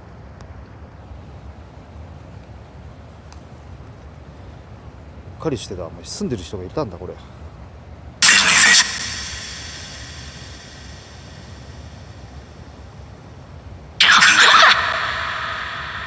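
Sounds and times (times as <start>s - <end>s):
crackly spirit box noise bursts: 8.2s - 12.3s.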